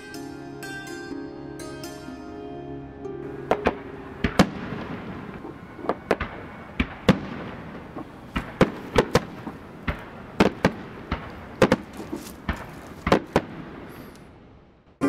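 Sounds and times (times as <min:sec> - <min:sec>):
music: 0:00.0 - 0:05.9
background hiss: 0:03.2 - 0:14.8
firecrackers banging: 0:03.5 - 0:14.1.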